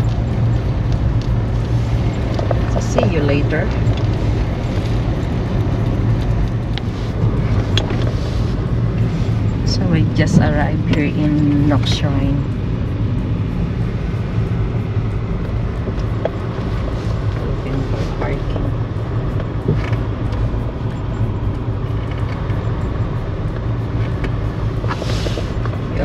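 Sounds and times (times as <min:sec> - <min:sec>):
car engine and tyres rumbling: 0:00.0 - 0:26.0
short hiss: 0:24.9 - 0:25.6.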